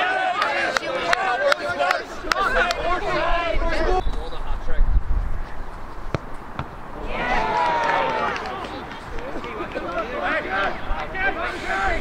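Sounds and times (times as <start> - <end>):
players shouting: 0.0 - 4.0, 6.9 - 12.0.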